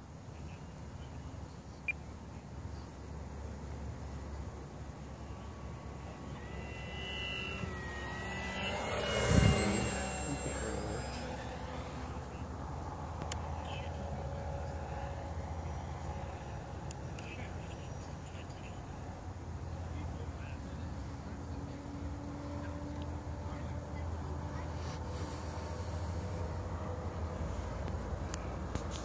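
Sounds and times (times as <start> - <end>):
model airplane motor: 3.2 - 17.1.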